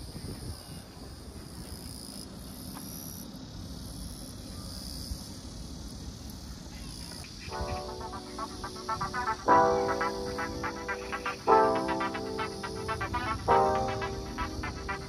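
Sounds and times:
insects chirping: 4.9 - 15.0
melodic music: 7.5 - 15.0.

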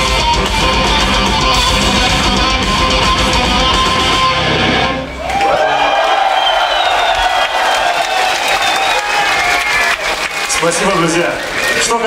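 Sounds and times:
held electric guitar tone: 0.0 - 5.3
live metal band playing: 0.0 - 5.4
crowd cheering: 0.0 - 12.0.

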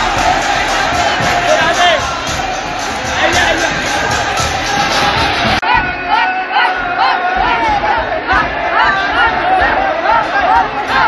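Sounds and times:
crowd noise: 0.0 - 11.0
women singing and shouting: 0.0 - 11.0.

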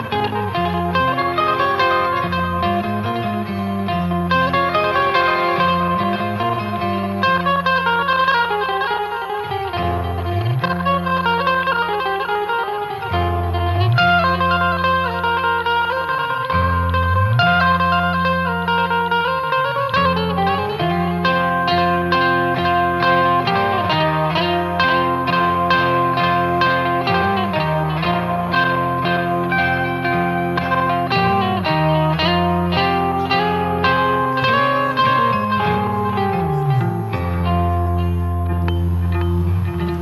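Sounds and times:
sliding bass: 0.0 - 8.8, 9.5 - 40.0
electric guitars: 0.0 - 40.0.

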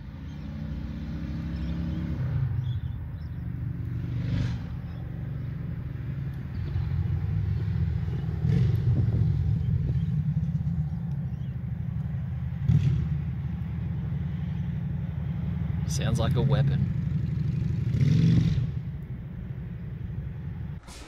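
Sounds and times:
car engine rumbling: 0.0 - 17.9.

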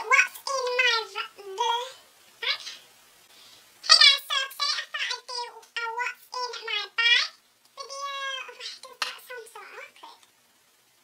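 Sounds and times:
woman's high-pitched voice: 0.0 - 2.8, 3.8 - 10.2.

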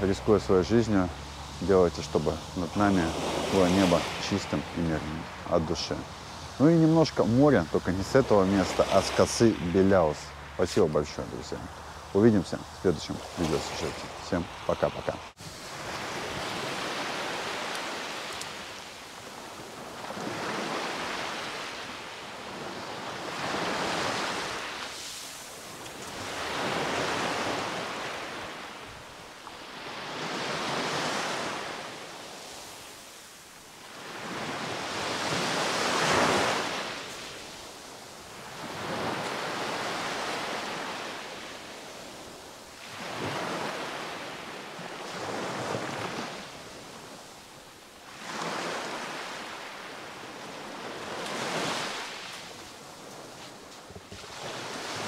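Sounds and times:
surf breaking on a beach: 0.0 - 55.0.

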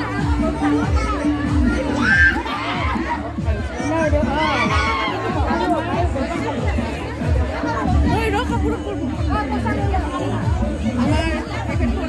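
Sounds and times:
crowd chatting in a hall: 0.0 - 12.0
music with steady bass: 0.0 - 12.0.

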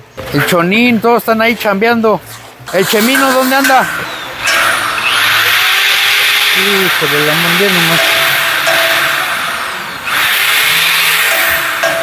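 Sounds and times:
electric drill running: 4.4 - 12.0.

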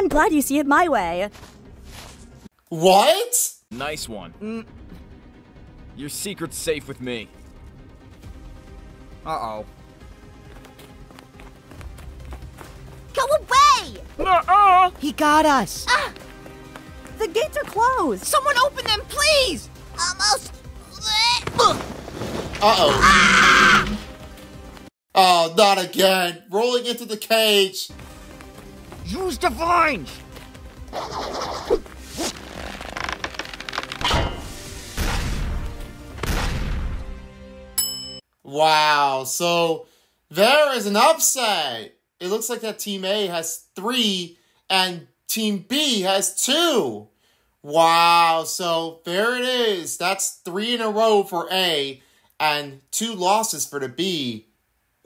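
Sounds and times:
cartoon running footsteps: 10.0 - 19.6
cartoon background music: 13.1 - 21.8, 27.9 - 37.7.

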